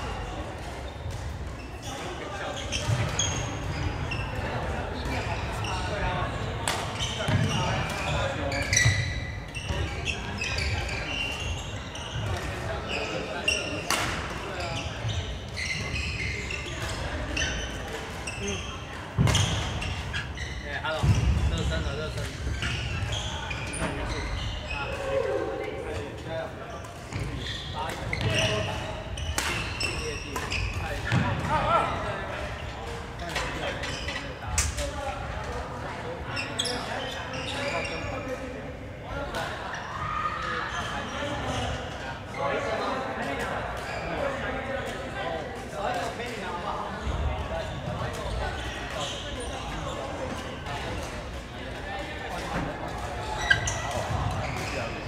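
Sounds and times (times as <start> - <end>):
voices in echoing hall: 0.0 - 55.0
shoes squeaking on wooden floor: 7.0 - 13.8, 14.6 - 25.2, 52.6 - 55.0.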